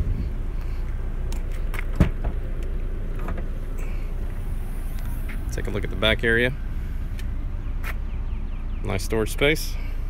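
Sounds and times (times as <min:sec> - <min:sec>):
low outdoor rumble: 0:00.0 - 0:10.0
car liftgate thump: 0:01.9 - 0:02.4.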